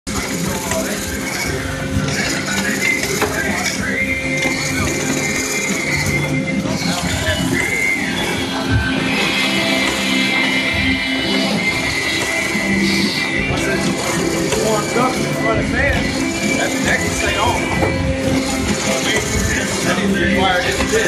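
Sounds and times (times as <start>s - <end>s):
machine humming and clattering: 0.1s - 21.0s
people's voices: 0.1s - 21.0s
radio music: 0.1s - 21.0s.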